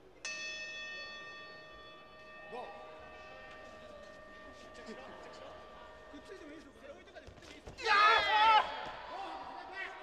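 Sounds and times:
boxing bell ringing: 0.0 - 7.0.

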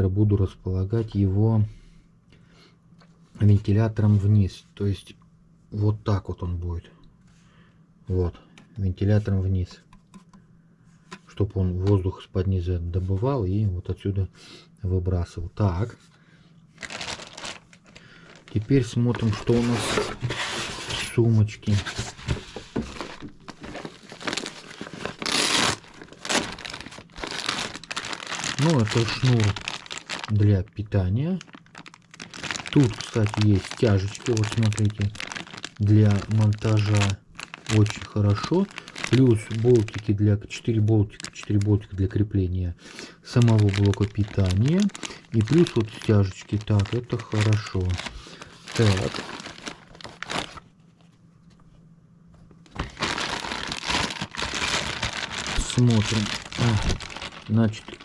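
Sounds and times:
plastic wrapping crinkling: 16.7 - 42.2, 42.9 - 51.2, 52.6 - 58.0
cloth pouch rustling: 16.8 - 18.6, 22.9 - 30.3.

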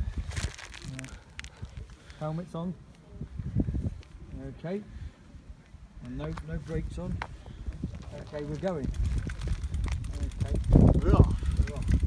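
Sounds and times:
wind rumbling on microphone: 0.0 - 2.1, 3.0 - 12.0
handling rustle: 0.0 - 3.0, 6.2 - 10.8.

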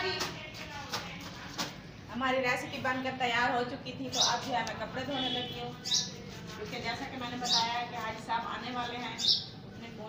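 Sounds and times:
wet clothes scrubbed on floor: 5.5 - 9.2.

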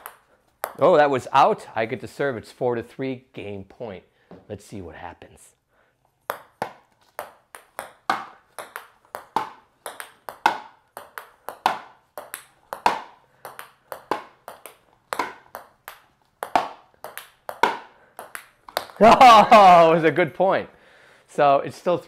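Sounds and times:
ping pong ball bouncing and struck: 0.0 - 1.0, 6.2 - 19.8.

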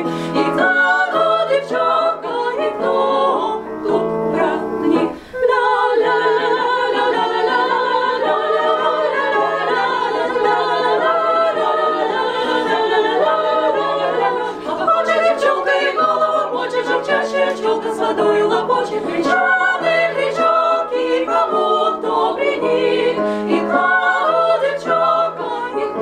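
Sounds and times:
female vocal ensemble singing: 0.0 - 26.0.

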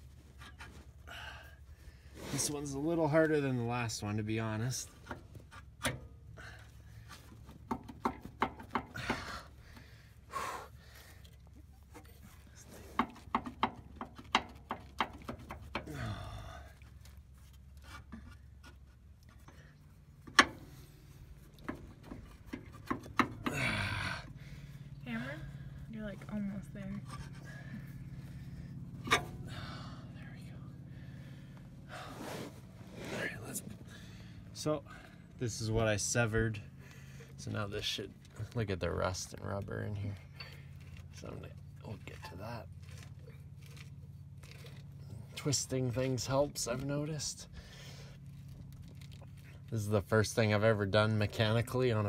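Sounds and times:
metal and rubber knocks: 7.6 - 9.2, 13.0 - 15.9, 21.6 - 23.6
man panting: 8.9 - 11.4, 15.8 - 16.9, 23.4 - 25.9, 29.5 - 30.2.

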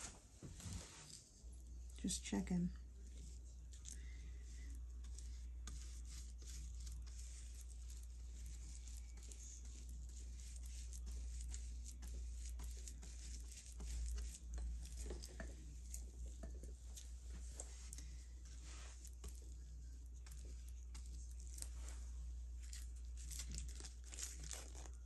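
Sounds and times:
steady low hum: 0.0 - 25.0
paintbrush dabbing on paper: 2.6 - 25.0.

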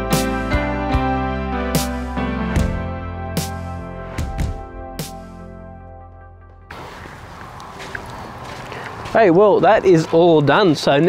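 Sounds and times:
background music held notes: 0.0 - 6.8
outdoor background noise: 6.7 - 11.0.

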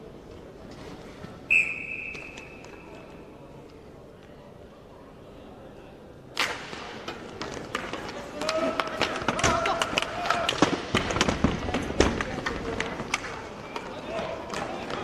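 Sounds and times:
hockey sticks clacking: 1.7 - 3.3, 6.4 - 15.0
skate wheels on rink floor: 6.4 - 15.0.

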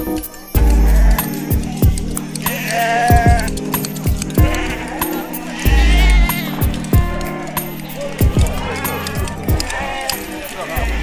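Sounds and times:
background music drone: 0.0 - 11.0
sheep bleating: 0.6 - 11.0.

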